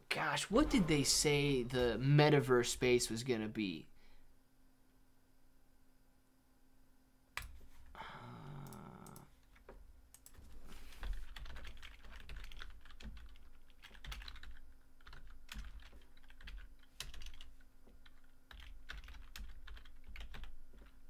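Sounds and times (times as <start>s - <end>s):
keyboard typing: 11.0s - 21.0s.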